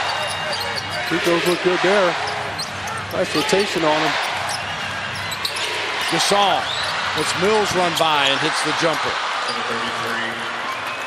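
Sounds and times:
sneaker squeaks: 0.0s - 7.2s
arena crowd noise: 0.0s - 11.0s.

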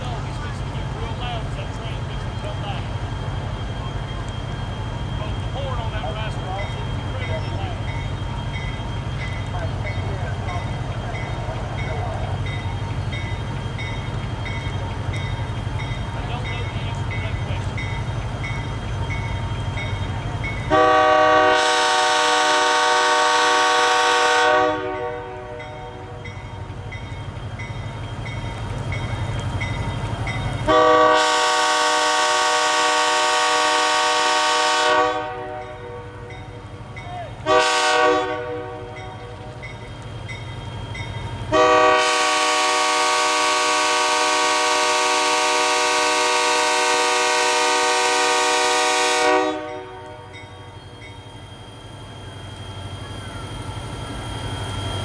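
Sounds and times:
diesel engine rumbling: 0.0s - 55.0s
locomotive air horn blasts: 20.7s - 25.6s, 30.7s - 36.1s, 37.4s - 39.0s, 41.5s - 50.2s.

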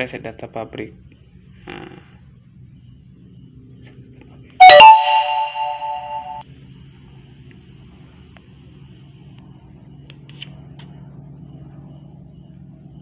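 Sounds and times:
smartphone electronic chime: 4.6s - 6.4s.

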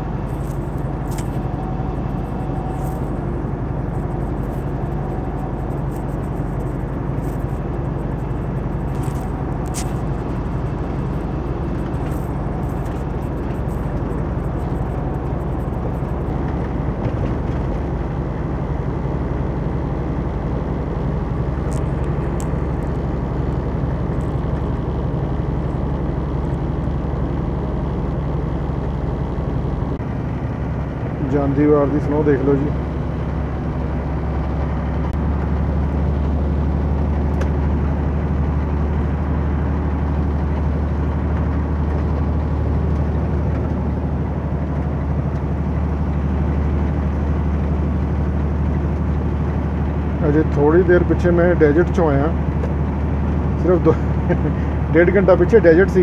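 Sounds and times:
truck engine drone and road noise: 0.0s - 56.0s.

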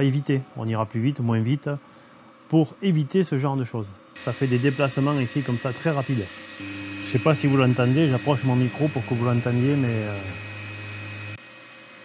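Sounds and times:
printer stepper motors buzzing: 4.2s - 12.0s.

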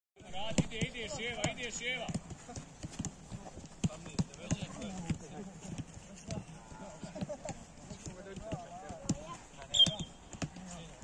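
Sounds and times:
footballs kicked thudding: 0.2s - 11.0s
players' voices: 0.2s - 11.0s.

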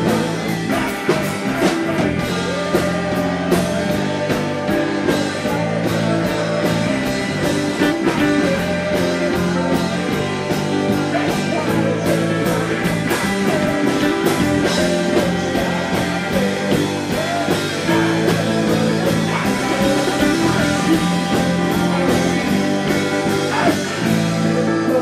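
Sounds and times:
drums: 0.0s - 25.0s
electric guitar: 0.0s - 25.0s
keyboard: 0.0s - 25.0s
man singing: 0.0s - 25.0s.

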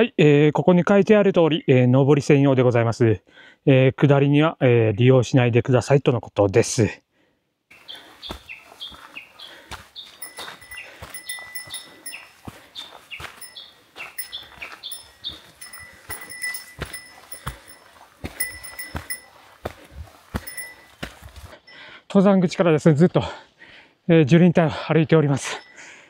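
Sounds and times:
footsteps on trail steps: 7.7s - 21.6s
small bell jingling: 10.2s - 12.5s, 13.1s - 19.6s, 20.3s - 21.1s.

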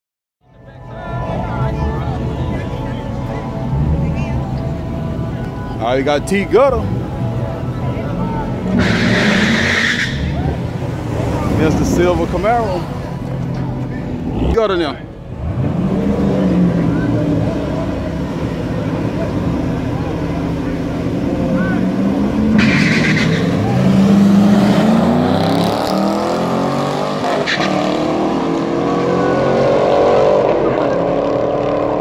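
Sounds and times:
drag racing engines revving: 8.4s - 32.0s.

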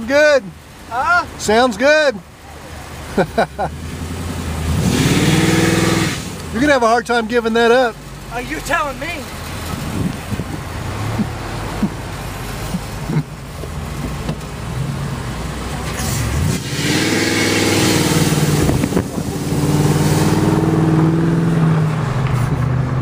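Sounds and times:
road noise: 0.0s - 23.0s
car engine accelerating: 2.8s - 23.0s.

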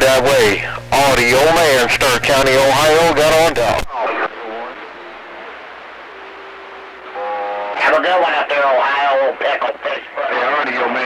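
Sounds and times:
voice with buzzy held sound: 0.0s - 5.7s, 7.1s - 11.0s
radio static hiss: 0.0s - 11.0s
steady radio tone: 0.0s - 11.0s
faint voice on radio: 3.6s - 5.5s.

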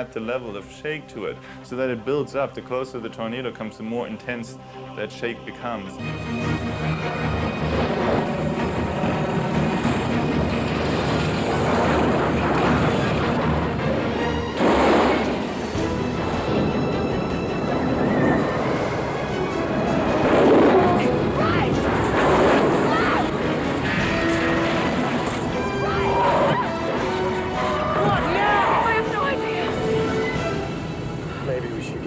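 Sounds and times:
film score music: 0.0s - 32.0s
rushing storm noise: 6.0s - 32.0s.

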